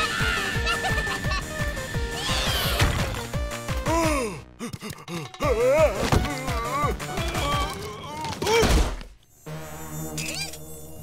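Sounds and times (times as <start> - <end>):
cartoon mosquito buzzing: 9.4 - 11.0.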